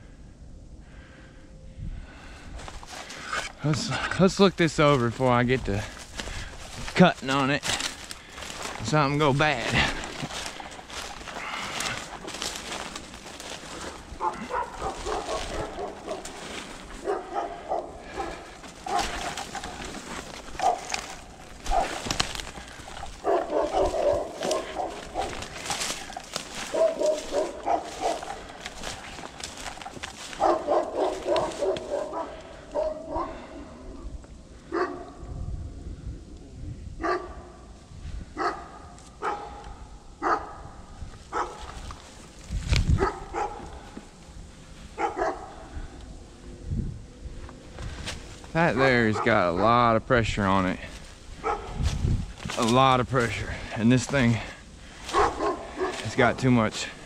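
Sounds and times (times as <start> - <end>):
footsteps crunching through dry leaves: 2.5 - 32.2, 41.1 - 45.8, 47.3 - 49.6, 50.3 - 57.0
dog barking and whining: 14.2 - 16.3, 17.0 - 19.2, 20.6 - 20.9, 23.2 - 25.3, 26.7 - 28.4, 30.4 - 33.4, 43.0 - 43.6, 45.0 - 45.6, 55.1 - 56.0.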